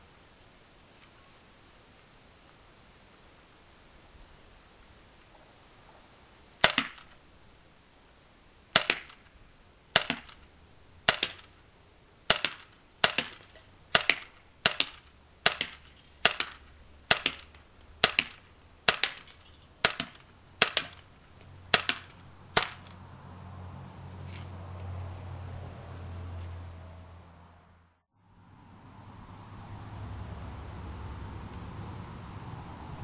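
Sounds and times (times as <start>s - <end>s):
airsoft pistol shots: 6.6s - 7.2s, 8.8s - 9.3s, 10.0s - 10.4s, 11.1s - 11.5s, 12.3s - 21.0s, 21.7s - 22.9s.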